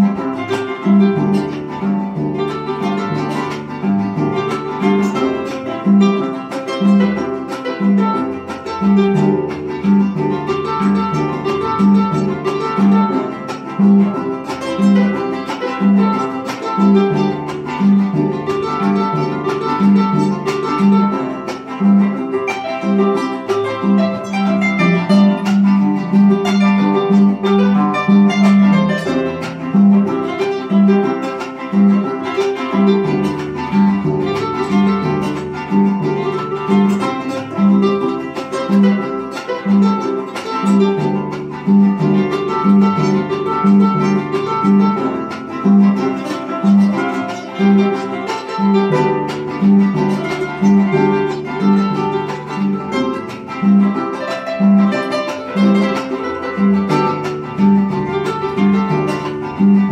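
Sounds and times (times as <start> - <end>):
harp playing lively instrumental: 0.0 - 59.9.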